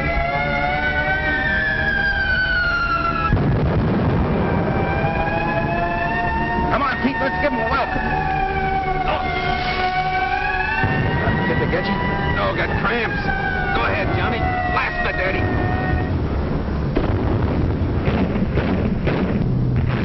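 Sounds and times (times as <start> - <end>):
air-raid siren wailing: 0.0 - 16.7
sharp bangs: 3.1 - 5.6, 9.4 - 14.2, 15.3 - 20.0
loud low rumble: 3.3 - 6.0, 15.2 - 20.0.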